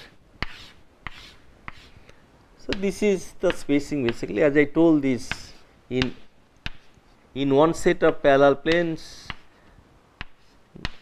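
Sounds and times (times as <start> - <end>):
chalk tapping on blackboard: 0.0 - 1.9, 2.7 - 4.4, 5.2 - 7.0, 8.7 - 9.5, 10.2 - 11.0
chalk scraping on blackboard: 0.0 - 2.0, 10.2 - 11.0.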